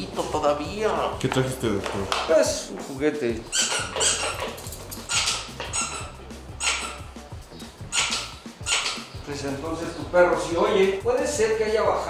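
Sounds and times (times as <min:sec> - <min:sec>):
squeaky dog toy squeaking: 0:03.4 - 0:09.2.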